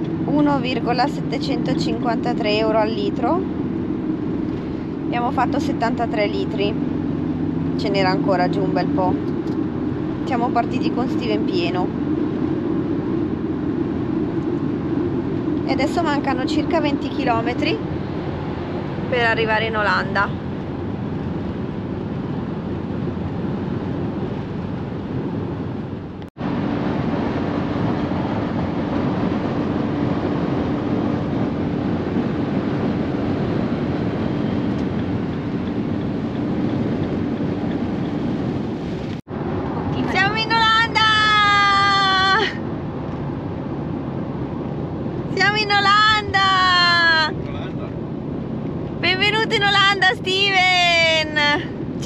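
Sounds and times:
road and engine noise: 0.0s - 52.0s.

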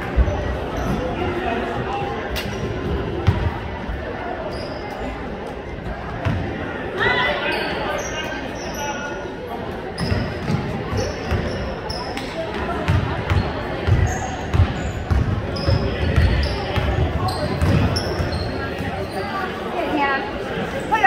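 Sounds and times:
sneakers squeaking on court: 10.0s - 19.6s.

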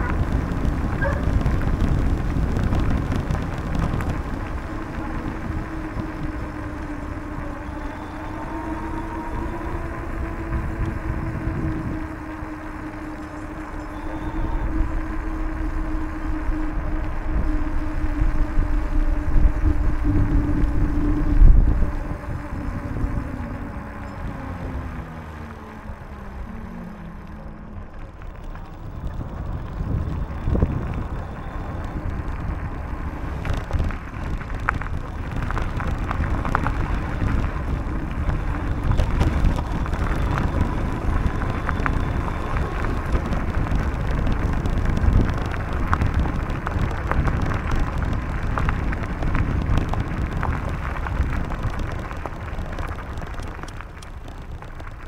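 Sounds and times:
bicycle tyres on pavement: 0.0s - 55.0s
vehicle-like drone: 0.0s - 55.0s
wind on microphone: 0.0s - 55.0s.

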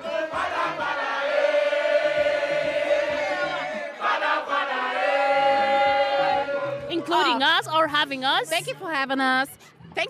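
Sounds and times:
choir-like sung vocals: 0.0s - 7.4s.

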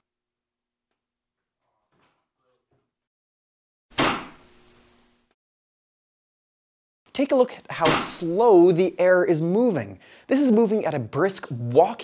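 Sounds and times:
vortex cannon firing thump: 3.9s - 4.5s.

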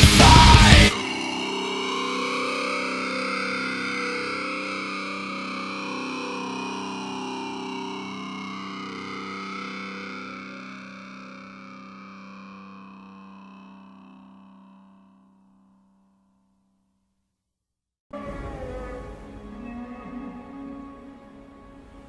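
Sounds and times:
distorted electric guitar chord: 0.0s - 15.3s.

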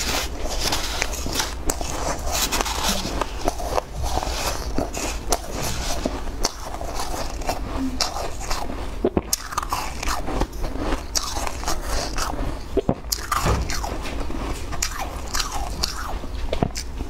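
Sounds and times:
crunching shaved ice: 0.0s - 17.0s.

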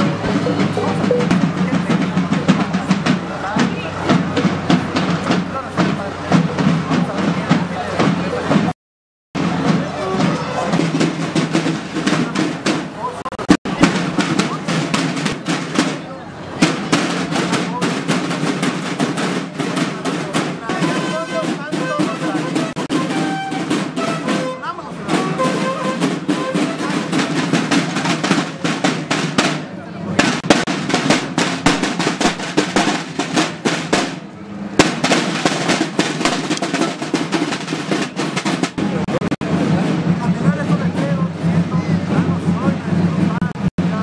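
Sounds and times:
snare drums marching cadence: 0.0s - 8.8s, 9.4s - 44.0s.

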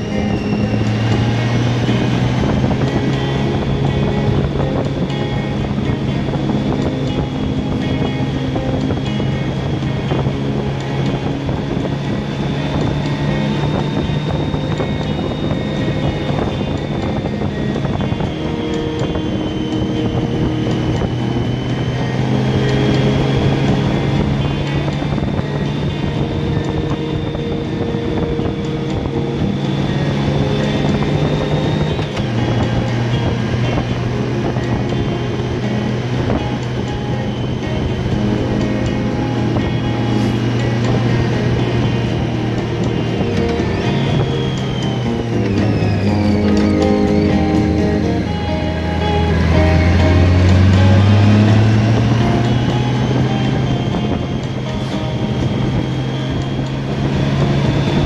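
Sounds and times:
motorcycle engine: 0.0s - 58.0s
music with held chords: 0.0s - 58.0s
wind noise: 0.0s - 58.0s.

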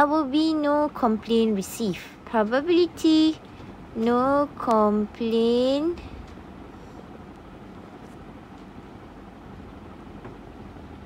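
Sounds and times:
faint rumbling hiss: 0.0s - 11.0s.

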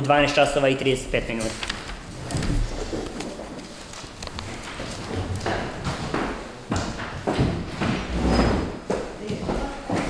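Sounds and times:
rustling papers: 0.0s - 7.6s.

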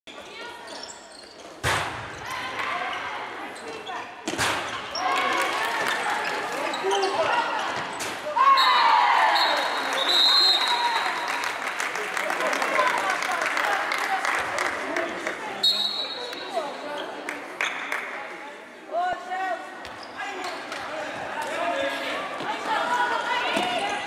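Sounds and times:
crowd cheering: 8.4s - 15.0s
whistle blowing: 8.5s - 11.0s, 15.6s - 16.3s.

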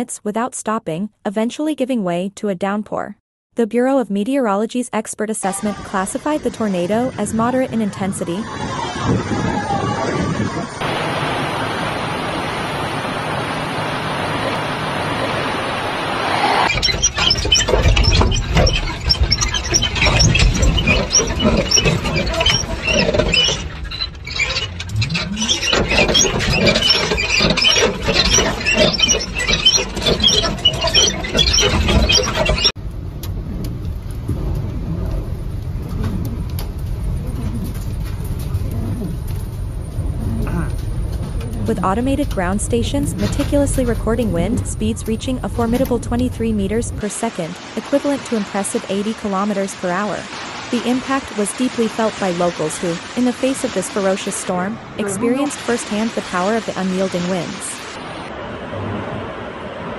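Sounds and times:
strong wind on microphone: 6.3s - 17.0s.

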